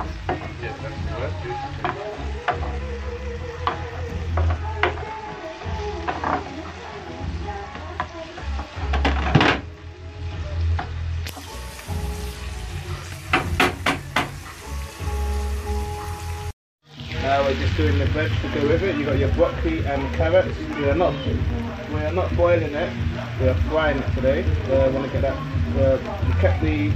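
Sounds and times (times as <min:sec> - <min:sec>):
sauce sizzling: 0:00.0 - 0:26.9
spoon knocking against pan: 0:13.3 - 0:14.4.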